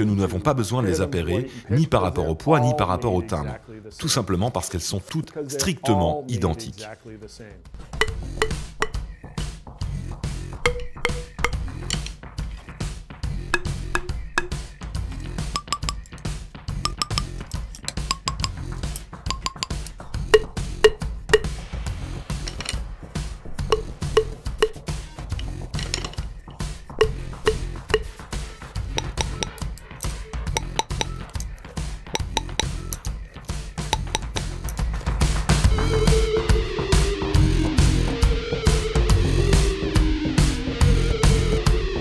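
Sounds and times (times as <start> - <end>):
drumsticks tapping on stone: 8.0 - 9.0, 10.7 - 12.2, 13.5 - 14.6, 15.5 - 21.6, 22.4 - 22.8, 23.6 - 26.2, 26.9 - 28.2, 28.9 - 34.8.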